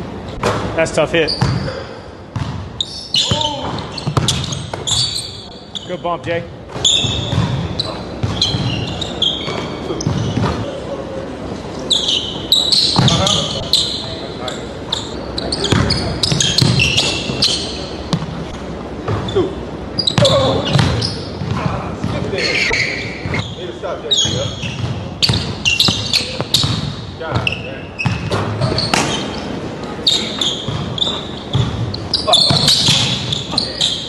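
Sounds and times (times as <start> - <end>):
sneaker squeaks: 0.3 - 10.8, 11.7 - 34.0
basketball bouncing on hardwood: 2.4 - 2.6, 3.3 - 5.0
basketball bouncing on wooden floor: 2.4 - 2.6, 3.2 - 5.0, 6.7 - 8.8, 20.2 - 22.2, 24.7 - 29.2, 30.7 - 31.9.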